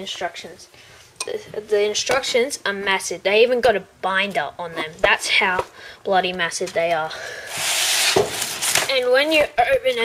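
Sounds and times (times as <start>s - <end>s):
paper rustling: 7.5s - 9.0s.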